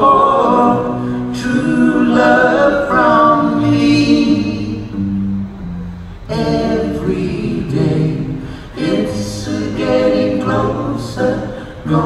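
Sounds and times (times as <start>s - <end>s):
men singing close harmony: 0.0s - 4.9s, 6.3s - 12.0s.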